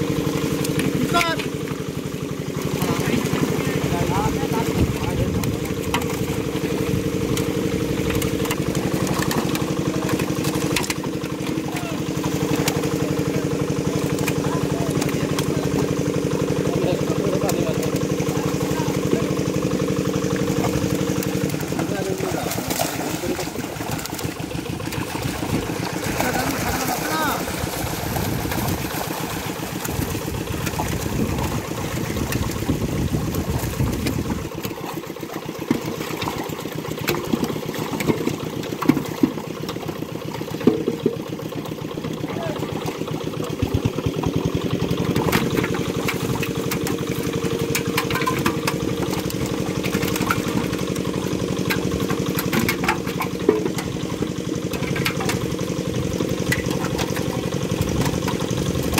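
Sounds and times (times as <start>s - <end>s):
engine hum: 0.0s - 58.9s
fish splashing in a net: 0.0s - 58.9s.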